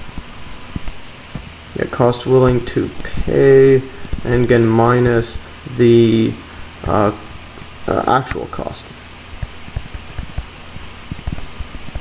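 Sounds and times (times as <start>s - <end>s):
electrical hum and hiss: 0.0s - 12.0s
stylus tapping on pen tablet: 9.4s - 10.5s.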